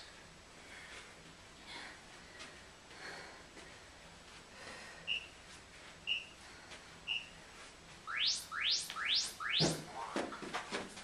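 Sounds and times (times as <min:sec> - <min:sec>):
short high beeps: 0:08.1 - 0:09.9
rising electronic sweeps: 0:08.1 - 0:10.0.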